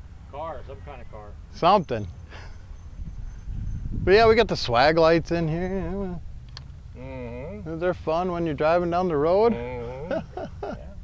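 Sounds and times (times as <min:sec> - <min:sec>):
low outdoor rumble: 0:00.0 - 0:11.0
faint voice: 0:09.5 - 0:10.1.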